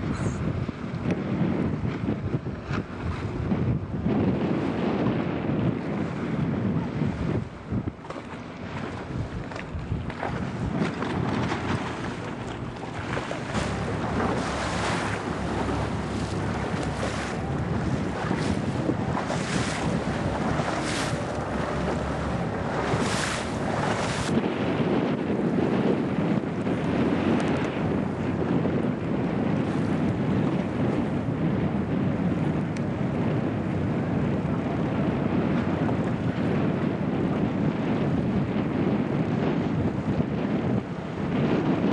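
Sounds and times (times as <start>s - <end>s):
water rushing past hull: 0.0s - 41.9s
wind buffeting microphone: 0.0s - 41.9s.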